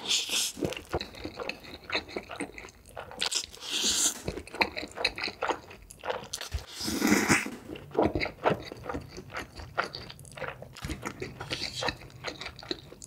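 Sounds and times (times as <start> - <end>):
wet chewing with smacks: 0.0 - 13.0
noodle slurp: 2.0 - 8.6.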